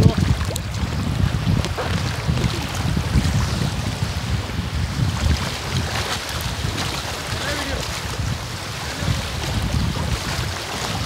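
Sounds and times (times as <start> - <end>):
shallow seawater splashing: 0.0 - 11.0
wind buffeting microphone: 0.0 - 11.0.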